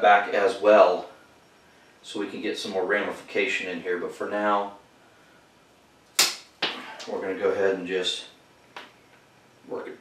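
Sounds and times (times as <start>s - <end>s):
branch cutters snipping branch: 6.2s - 6.8s.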